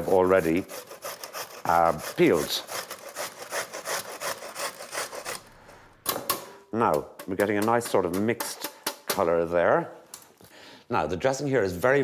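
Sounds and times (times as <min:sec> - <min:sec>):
beetroot grated on metal grater: 0:00.0 - 0:05.5.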